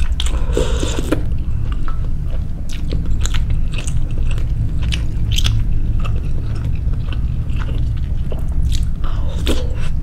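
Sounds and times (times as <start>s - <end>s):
steady low rumble: 0.0s - 10.0s
wet chewing mouth clicks: 0.0s - 10.0s.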